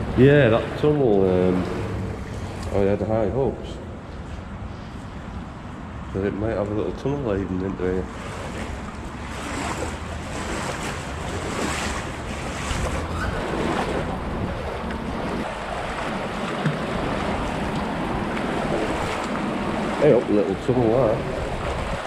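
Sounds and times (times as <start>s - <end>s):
wading through water: 0.0s - 3.1s, 6.6s - 22.0s
wind buffeting microphone: 6.5s - 22.0s
river water rushing and splashing: 8.1s - 22.0s.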